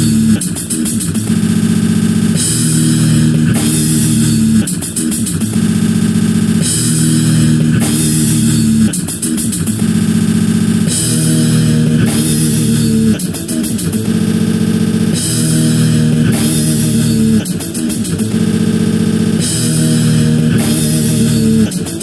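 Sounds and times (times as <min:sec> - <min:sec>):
quick drum hits: 0:00.0 - 0:11.4, 0:12.0 - 0:19.8, 0:20.6 - 0:22.0
cymbal wash: 0:00.0 - 0:22.0
distorted bass guitar riff: 0:00.0 - 0:22.0.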